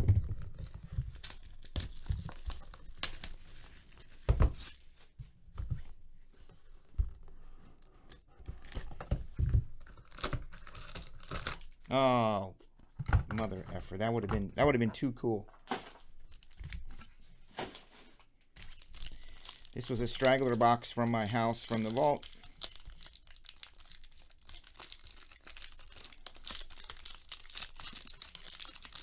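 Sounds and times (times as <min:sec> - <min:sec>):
wrapping tearing and crinkling: 0:00.3 - 0:05.1, 0:07.7 - 0:09.1, 0:09.8 - 0:12.3, 0:15.6 - 0:29.0.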